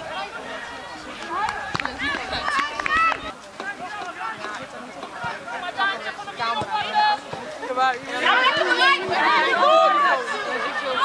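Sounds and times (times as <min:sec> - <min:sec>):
people shouting and calling: 0:00.0 - 0:11.0.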